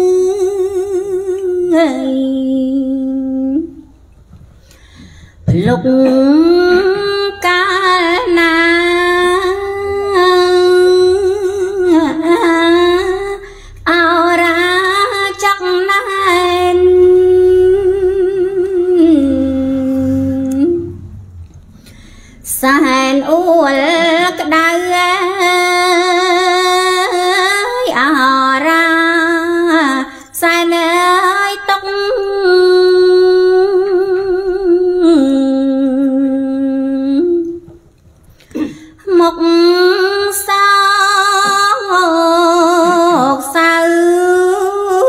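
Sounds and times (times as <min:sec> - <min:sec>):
woman chanting: 0:00.0 - 0:03.9, 0:05.5 - 0:21.4, 0:22.4 - 0:37.7, 0:39.0 - 0:45.0
woman breathing: 0:04.5 - 0:05.5, 0:13.4 - 0:13.9, 0:19.9 - 0:22.5, 0:38.2 - 0:39.0
woman chanting verse: 0:05.5 - 0:21.4.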